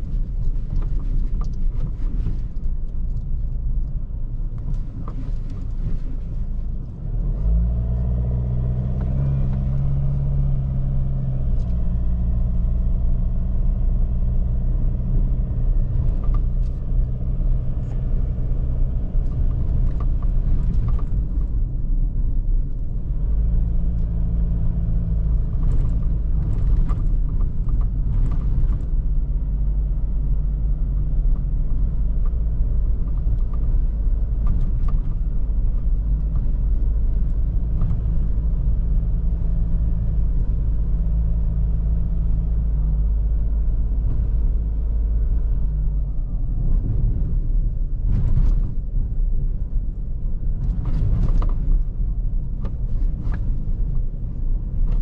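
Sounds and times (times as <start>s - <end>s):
tyre rumble on dirt track: 46.4s - 55.0s.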